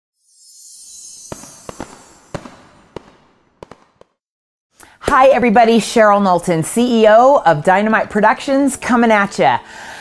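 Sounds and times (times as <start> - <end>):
fireworks fizzing hiss: 0.6 - 3.8
fireworks bangs: 1.2 - 4.2.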